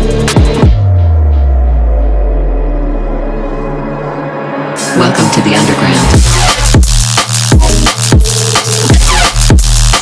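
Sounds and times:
dark synth pad: 0.8 - 6.3.

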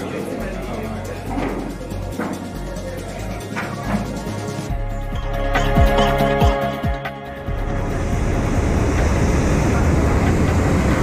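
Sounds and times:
propane burner roaring: 7.4 - 11.0.

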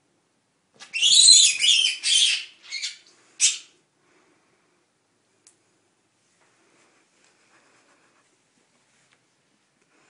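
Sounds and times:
rabbit screaming: 0.8 - 3.7.

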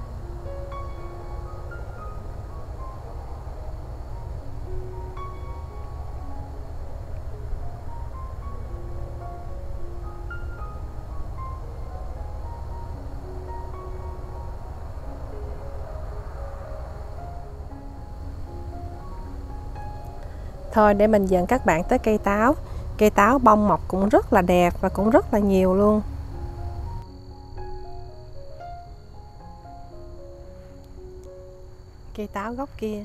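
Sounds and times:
steady low rumble: 0.0 - 33.0.

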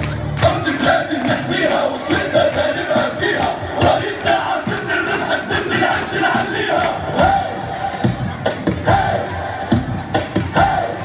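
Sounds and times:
music: 0.0 - 11.0
group chanting in unison: 0.4 - 11.0.

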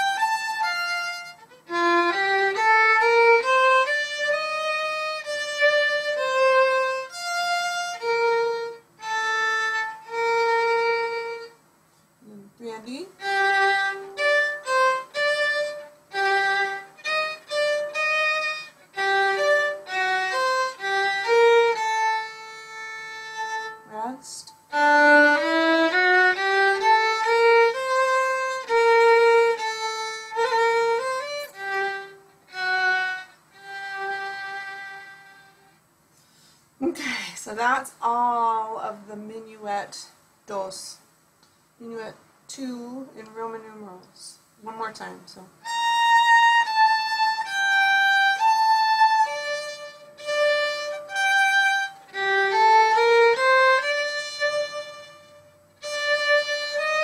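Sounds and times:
solo violin bowed: 0.0 - 11.6, 13.2 - 35.8, 45.6 - 57.0.

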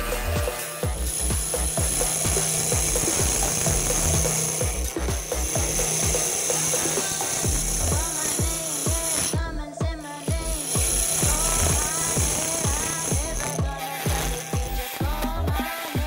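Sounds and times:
background music with steady beat: 0.0 - 16.0
lathe cutter rasping wood: 0.0 - 16.0.

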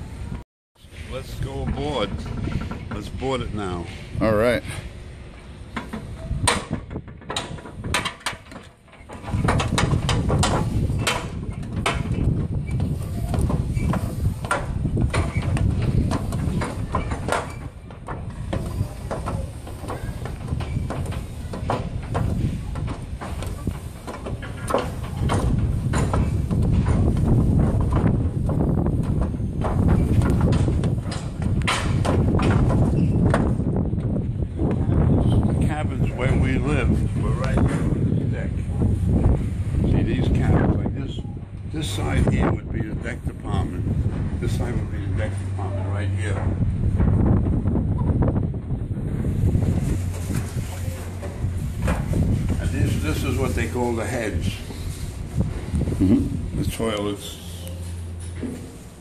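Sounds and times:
wind buffeting microphone: 0.0 - 57.4
knocks and clanks from treads: 1.6 - 4.0, 5.7 - 33.8
footsteps on metal stairs: 5.8 - 34.1, 57.7 - 59.0.

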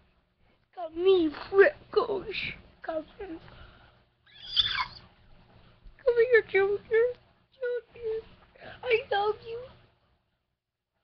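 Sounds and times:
puppy squealing: 4.3 - 5.1.

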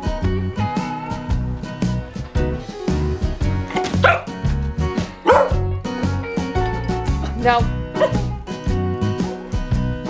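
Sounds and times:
background music: 0.0 - 10.0
dog barking: 3.8 - 4.4, 5.2 - 5.6, 8.0 - 8.3.

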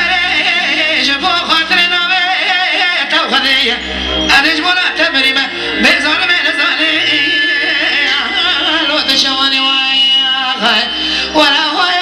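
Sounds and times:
instrumental backing: 0.0 - 12.0
man singing into microphone: 0.0 - 12.0.

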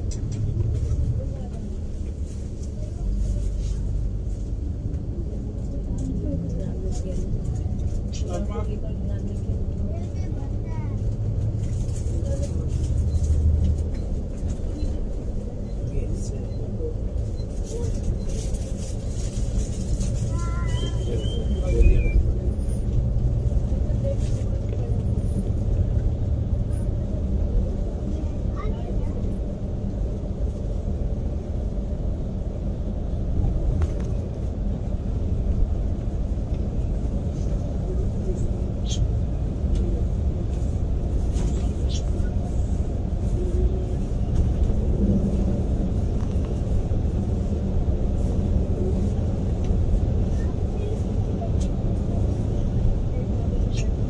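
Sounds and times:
coach engine and road rumble: 0.0 - 54.0.

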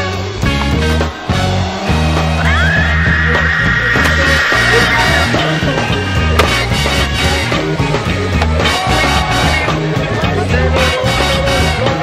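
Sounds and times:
music with steady bass line: 0.0 - 12.0.

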